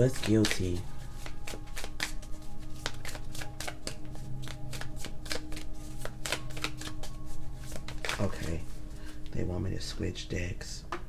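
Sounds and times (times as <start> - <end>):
cards being shuffled: 0.0 - 8.8
soft background music: 0.0 - 11.0.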